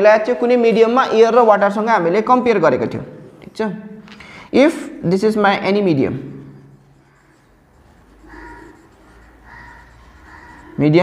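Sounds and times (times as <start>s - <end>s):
marker squeaking on whiteboard: 6.2s - 11.0s.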